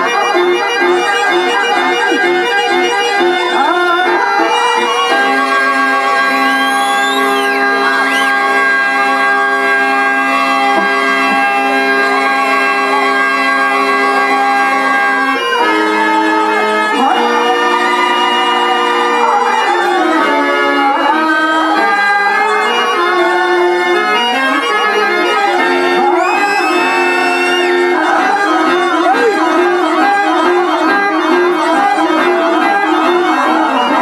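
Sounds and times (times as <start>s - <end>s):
instrumental music with held notes: 0.0s - 34.0s.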